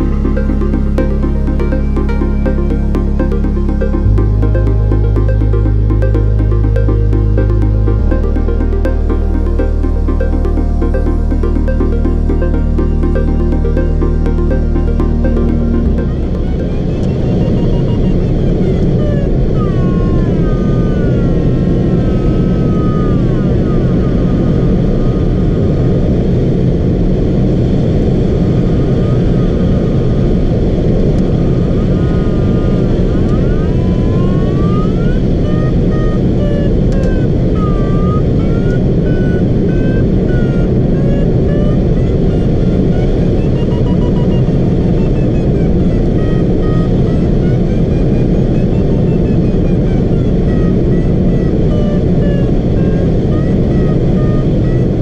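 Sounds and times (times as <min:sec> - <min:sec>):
electronic variometer beeping: 0:00.0 - 0:18.2, 0:41.0 - 0:47.2.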